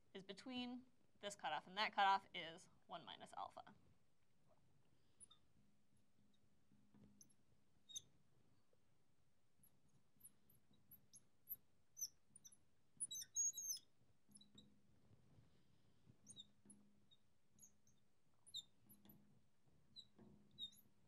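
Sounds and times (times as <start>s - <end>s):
marker squeaking on glass: 7.2s - 8.2s, 10.2s - 14.7s, 16.2s - 19.1s, 19.9s - 21.0s.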